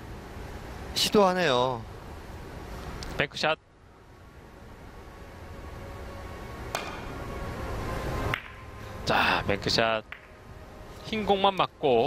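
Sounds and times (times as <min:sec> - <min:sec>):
low background sound: 0:00.0 - 0:12.0
billiard balls knocking: 0:08.3 - 0:08.6, 0:10.1 - 0:10.4
cue tip clicking on ball: 0:10.1 - 0:10.3.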